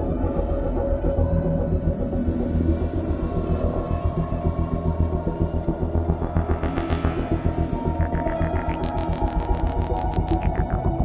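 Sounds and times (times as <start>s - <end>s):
layered synthesizer: 0.0s - 11.0s
pulsing deep bass: 0.0s - 11.0s.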